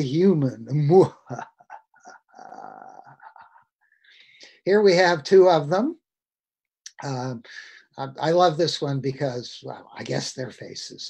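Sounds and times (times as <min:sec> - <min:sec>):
man laughing: 0:00.9 - 0:03.8.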